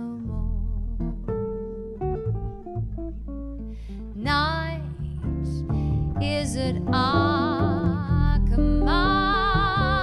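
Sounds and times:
jazz guitar picked notes: 0:00.0 - 0:10.0
plucked double bass: 0:00.0 - 0:10.0.

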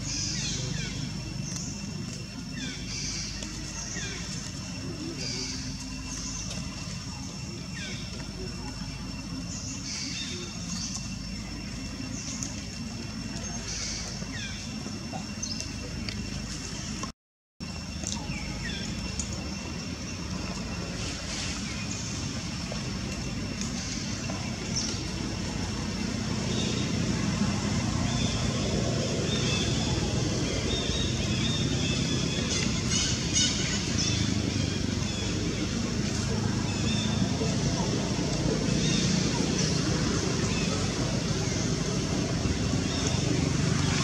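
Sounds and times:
low rumble and hiss: 0:00.0 - 0:44.0.

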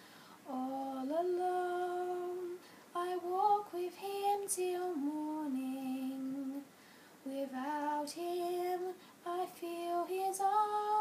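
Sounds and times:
woman singing unaccompanied: 0:00.4 - 0:11.0.

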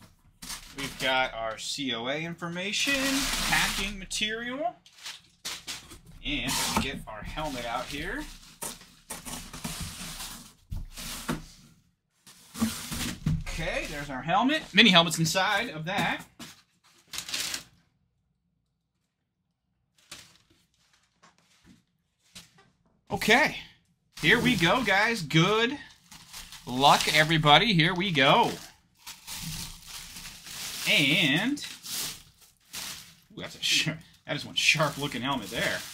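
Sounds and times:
packing material and box rustling: 0:00.0 - 0:01.4, 0:02.8 - 0:17.8, 0:19.9 - 0:23.5, 0:24.2 - 0:35.9.

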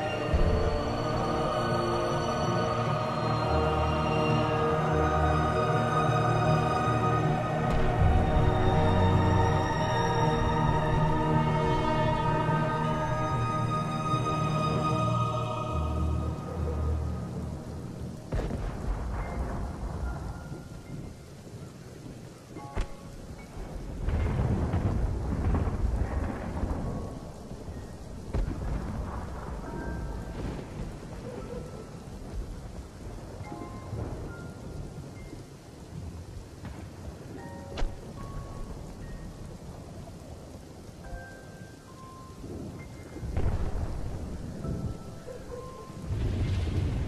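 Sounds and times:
rain-like hiss: 0:00.0 - 0:47.0
deep rolling rumbles: 0:23.5 - 0:31.3.

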